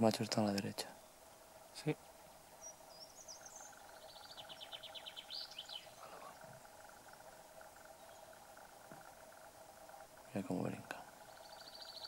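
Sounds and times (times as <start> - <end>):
faint background hum: 0.0 - 12.0
songbird singing: 0.0 - 12.0.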